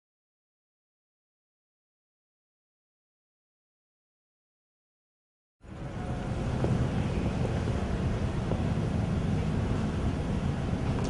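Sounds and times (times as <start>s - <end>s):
steady low rushing noise: 5.6s - 11.0s.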